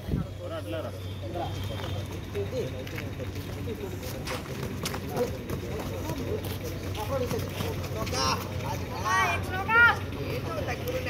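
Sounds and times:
faint voices: 0.0s - 11.0s
footwork scuffing on pavement: 1.6s - 8.7s.

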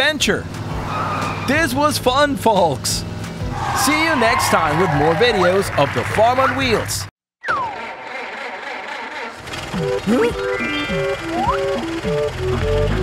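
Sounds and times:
falling whistle glide: 3.6s - 5.3s
cartoon background music: 7.4s - 13.0s.

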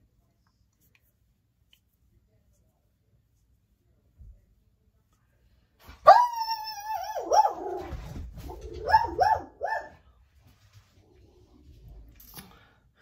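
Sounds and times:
dog whining: 6.1s - 9.9s
dog yelping: 6.1s - 10.0s.

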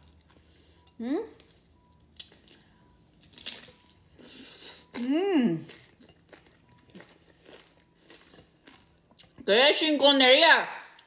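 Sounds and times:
soft chewing and lip clicks: 0.0s - 9.5s.

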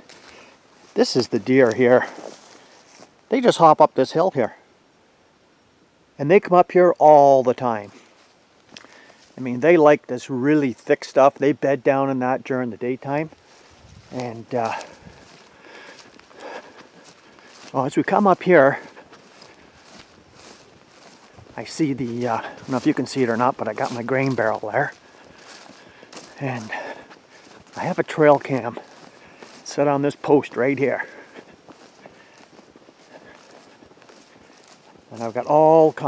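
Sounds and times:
footsteps on grass: 0.0s - 3.9s, 7.8s - 9.6s, 12.9s - 36.0s
rustling brush: 13.4s - 36.0s.

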